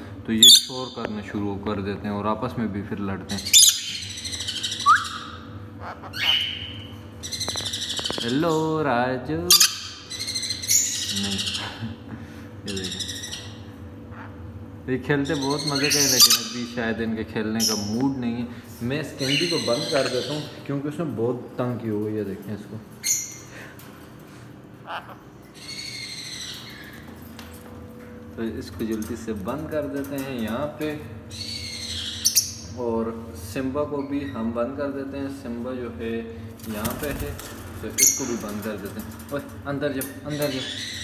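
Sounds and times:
bird screeching: 0:00.4 - 0:00.8, 0:03.3 - 0:08.5, 0:09.5 - 0:11.8, 0:12.7 - 0:14.4, 0:15.2 - 0:16.8, 0:19.2 - 0:20.6, 0:24.8 - 0:27.0, 0:31.3 - 0:32.8, 0:38.0 - 0:38.5, 0:40.3 - 0:41.0
parrot high call: 0:03.5 - 0:08.2.

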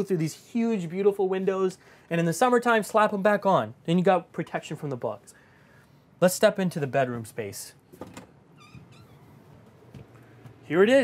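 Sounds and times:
door squeaking: 0:08.0 - 0:09.7.

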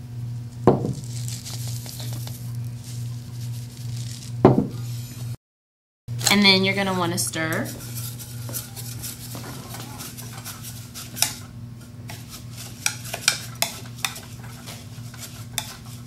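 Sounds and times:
steady low hum: 0:00.0 - 0:05.4, 0:06.1 - 0:16.0
spatula scraping mixture: 0:01.0 - 0:05.3, 0:06.3 - 0:16.0.

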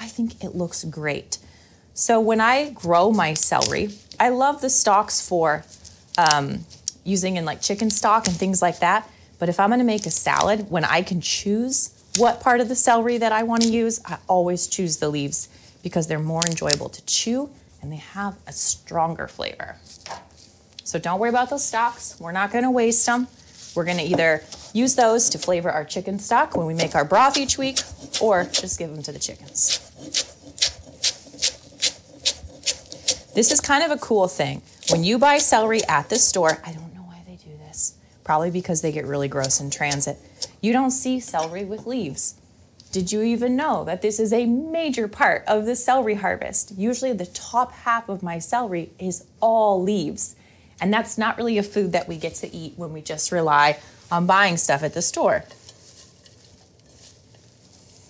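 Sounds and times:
rustling of celery leaves: 0:19.8 - 0:36.7, 0:53.2 - 0:58.0
knife chopping on wooden board: 0:26.8 - 0:28.7, 0:29.6 - 0:33.7.

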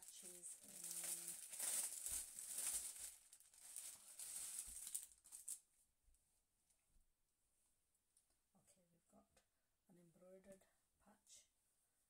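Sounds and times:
plastic wrapping crinkling: 0:00.0 - 0:05.6.

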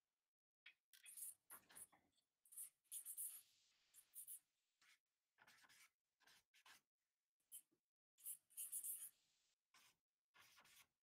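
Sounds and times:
pencil scratching on paper: 0:02.5 - 0:03.4, 0:04.0 - 0:06.9, 0:07.5 - 0:11.0.

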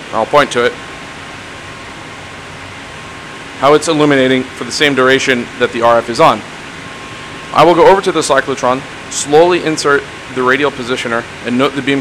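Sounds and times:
equipment hiss: 0:00.0 - 0:12.0
faint steady whine: 0:00.0 - 0:12.0.

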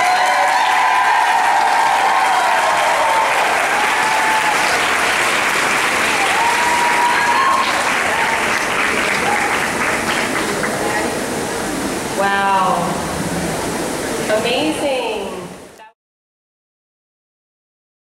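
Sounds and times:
high drawn-out whoops: 0:00.0 - 0:04.9, 0:06.1 - 0:08.4
audience applauding and cheering: 0:00.0 - 0:12.0.

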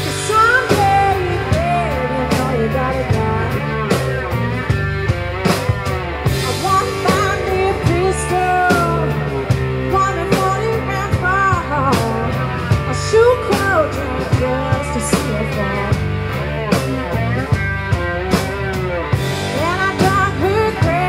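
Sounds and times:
drum kit beat: 0:00.0 - 0:21.0
electric bass: 0:00.0 - 0:21.0
electric guitar: 0:00.0 - 0:21.0.

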